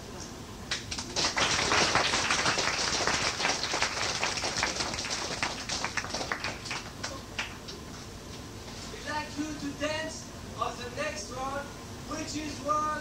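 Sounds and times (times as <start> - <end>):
audience applauding: 0.7 - 7.6.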